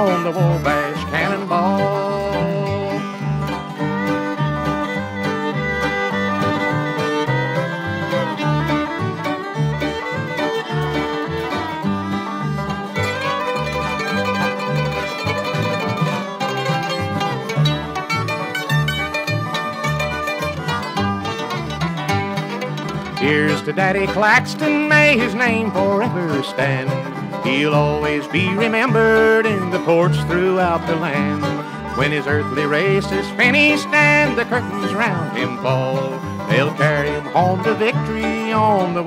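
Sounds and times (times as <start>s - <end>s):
banjo: 0.0s - 39.0s
fiddle: 0.0s - 39.0s
guitar: 0.0s - 39.0s.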